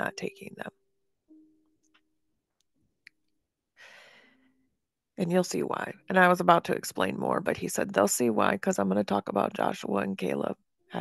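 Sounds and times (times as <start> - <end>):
woman breathing: 3.8 - 4.7.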